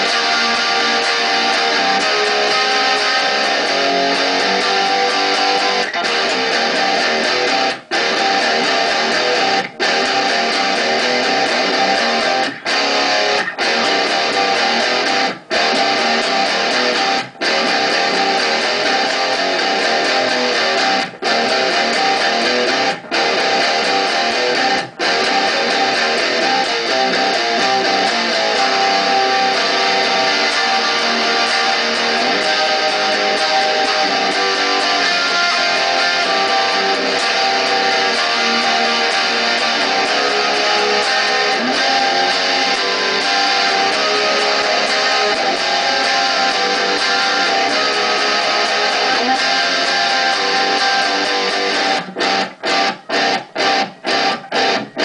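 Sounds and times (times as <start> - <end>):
electric guitar strumming chords: 0.0 - 55.0.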